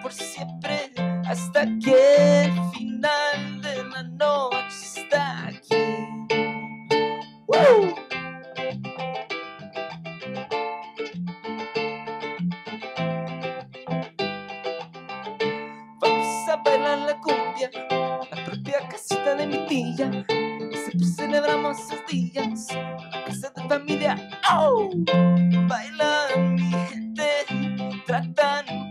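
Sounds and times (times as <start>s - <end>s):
man singing: 0.0s - 6.1s, 7.5s - 8.0s, 16.0s - 25.1s, 25.7s - 28.9s
ukulele: 0.0s - 28.9s
electric bass: 5.1s - 10.5s, 17.9s - 28.9s.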